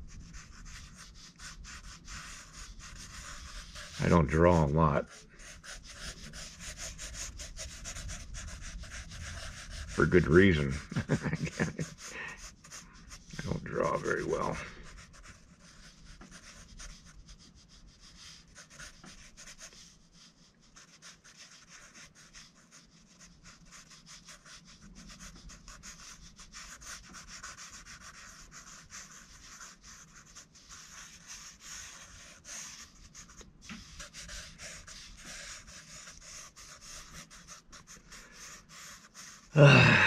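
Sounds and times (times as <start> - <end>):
marker scribbling on paper: 0.0 - 39.6.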